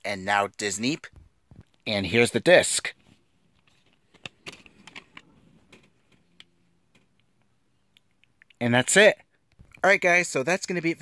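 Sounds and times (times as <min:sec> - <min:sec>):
plastic clicks of cd case: 0:03.6 - 0:07.1.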